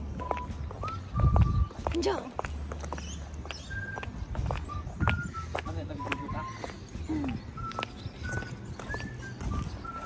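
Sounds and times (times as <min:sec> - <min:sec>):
clicking clip-clop beat: 0:00.1 - 0:10.0.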